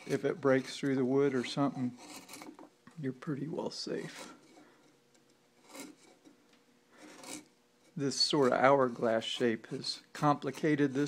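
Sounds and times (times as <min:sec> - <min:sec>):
carving tool scraping wood: 0:00.0 - 0:02.6, 0:04.0 - 0:04.7, 0:05.6 - 0:06.3, 0:07.0 - 0:09.6.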